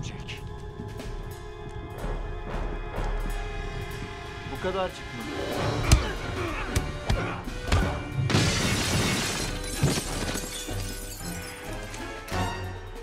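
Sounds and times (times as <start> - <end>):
orchestral music: 0.0 - 13.0
glass shattering: 8.3 - 12.2.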